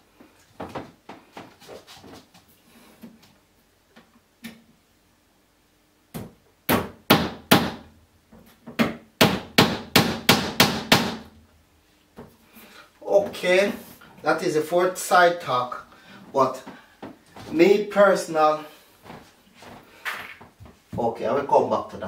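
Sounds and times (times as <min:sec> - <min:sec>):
hammer striking nails into wood: 0:06.2 - 0:07.9, 0:08.8 - 0:11.3.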